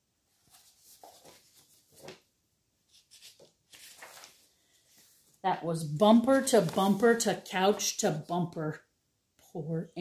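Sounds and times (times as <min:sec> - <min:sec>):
paper book rustling: 0:00.3 - 0:02.3, 0:02.9 - 0:05.4, 0:06.3 - 0:07.8.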